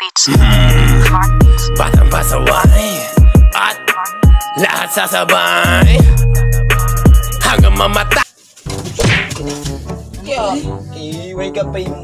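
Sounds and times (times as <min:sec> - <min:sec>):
rap music: 0:00.3 - 0:08.3
sharp whack: 0:08.9 - 0:09.4.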